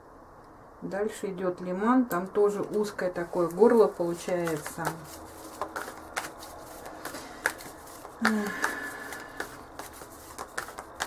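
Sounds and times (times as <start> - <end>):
cards being shuffled: 2.6 - 11.0
cards snapping: 4.1 - 11.0.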